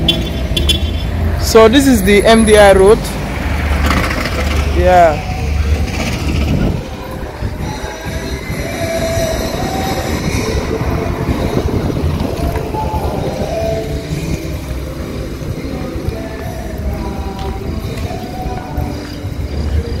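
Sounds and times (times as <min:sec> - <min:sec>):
car engines: 0:00.0 - 0:20.0.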